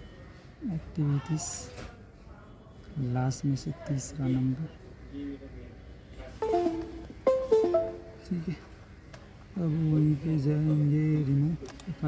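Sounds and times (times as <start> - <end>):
electronic notification chimes: 6.4 - 8.4.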